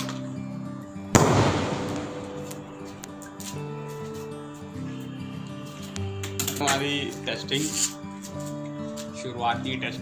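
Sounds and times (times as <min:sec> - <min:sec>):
background music: 0:00.0 - 0:10.0
firework rocket bang: 0:01.2 - 0:03.7.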